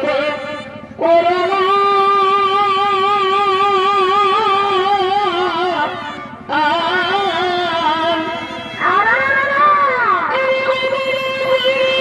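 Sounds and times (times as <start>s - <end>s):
double-reed pipe long note: 0.0s - 12.0s.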